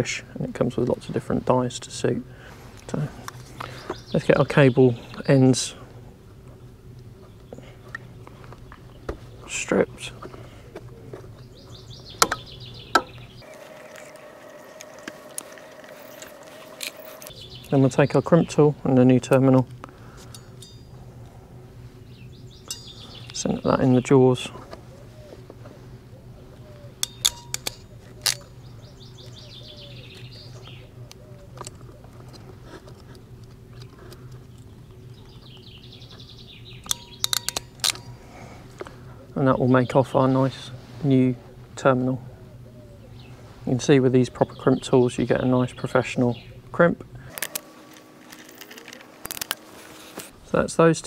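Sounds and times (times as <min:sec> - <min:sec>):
bird chirping: 0:03.4 - 0:05.8, 0:10.9 - 0:19.0, 0:22.0 - 0:25.4, 0:26.1 - 0:32.2, 0:33.6 - 0:38.2, 0:44.2 - 0:46.7
wire strippers clicking: 0:27.0 - 0:28.6, 0:36.8 - 0:38.2.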